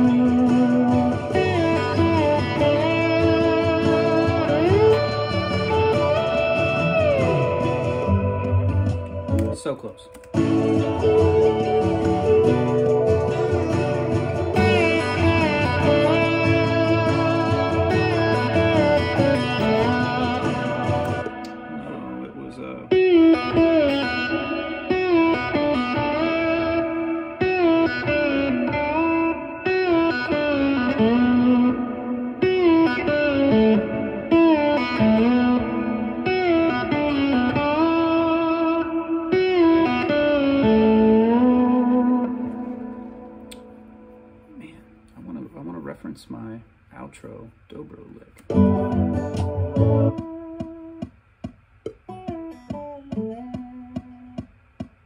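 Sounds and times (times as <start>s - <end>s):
bass backing: 0.0s - 26.7s, 48.3s - 55.0s
slide electric guitar solo: 0.0s - 45.1s, 48.4s - 51.0s, 52.1s - 54.4s.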